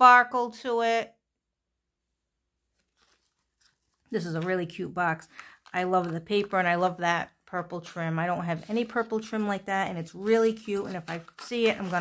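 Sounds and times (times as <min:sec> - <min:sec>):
cardstock rustling: 0:02.7 - 0:07.0, 0:07.6 - 0:12.0.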